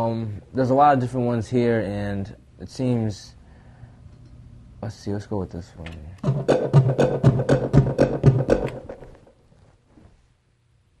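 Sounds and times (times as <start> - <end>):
gated synth pulses: 6.2 - 9.3.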